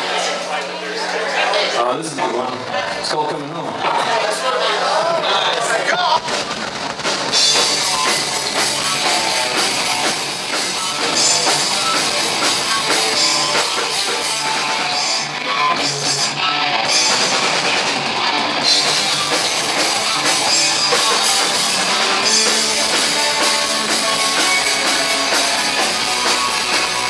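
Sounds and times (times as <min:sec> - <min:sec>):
distorted electric guitars: 0:01.8 - 0:27.0
drum kit with crashing cymbals: 0:06.1 - 0:27.0.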